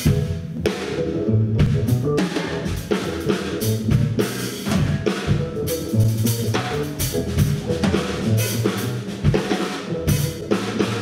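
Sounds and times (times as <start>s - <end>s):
instrumental rock band playing: 0.0s - 11.0s.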